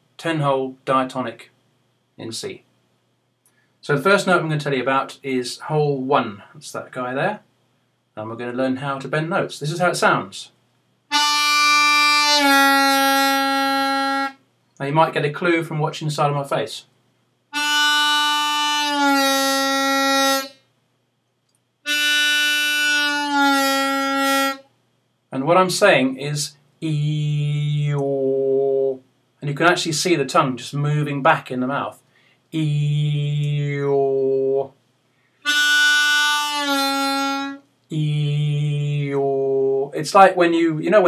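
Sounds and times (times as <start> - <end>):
harmonica bending notes: 11.1 - 14.4, 17.5 - 20.6, 21.8 - 24.7, 35.4 - 39.0.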